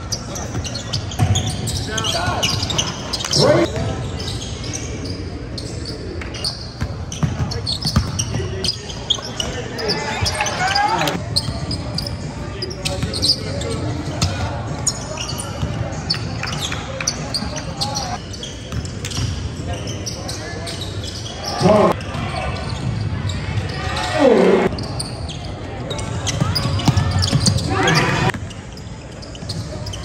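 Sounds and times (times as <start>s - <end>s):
sneakers squeaking: 0.0s - 30.0s
voices echoing in a hall: 0.0s - 30.0s.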